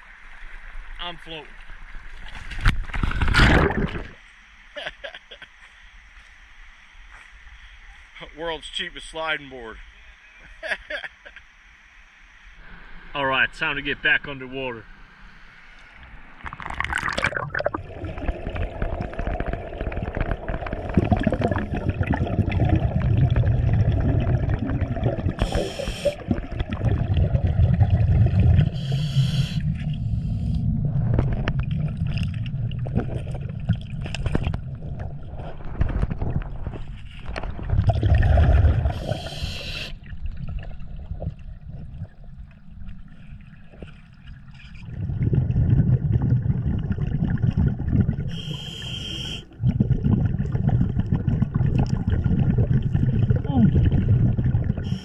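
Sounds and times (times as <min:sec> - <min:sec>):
underwater exhaust bubbles: 0:02.8 - 0:04.2, 0:16.4 - 0:55.0
regulator inhalation hiss: 0:25.4 - 0:26.2, 0:28.7 - 0:30.6, 0:38.9 - 0:40.0, 0:48.3 - 0:49.5.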